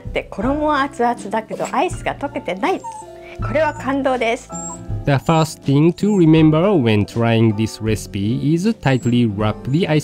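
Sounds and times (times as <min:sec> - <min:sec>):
woman speaking: 0:00.0 - 0:04.8
background music: 0:00.0 - 0:10.0.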